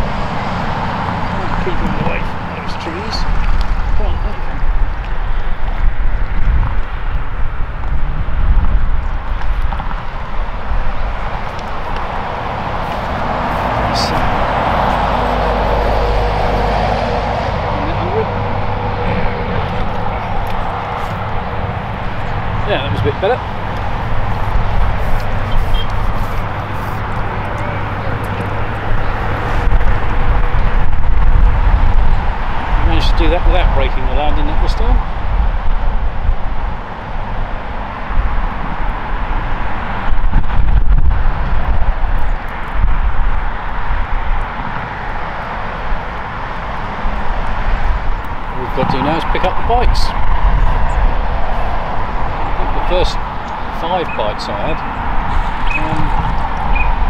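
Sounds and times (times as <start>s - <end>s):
constant low rumble: 0.0s - 45.2s
road traffic passing: 0.0s - 57.0s.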